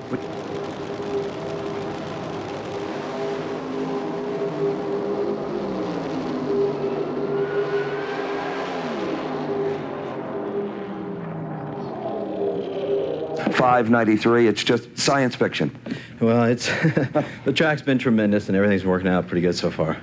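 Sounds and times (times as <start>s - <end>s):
drag racing car engines: 0.0s - 14.6s.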